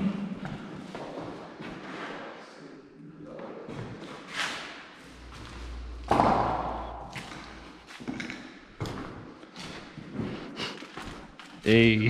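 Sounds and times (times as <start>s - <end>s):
low steady rumble: 5.1s - 7.8s
loud thud: 5.8s - 7.7s.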